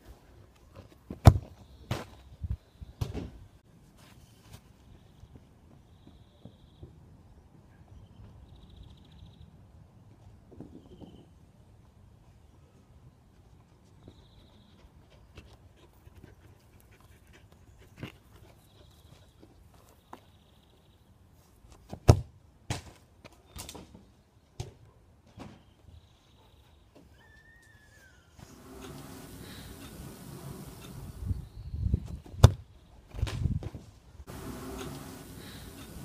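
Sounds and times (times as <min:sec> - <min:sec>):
football thump: 0:32.4 - 0:32.6.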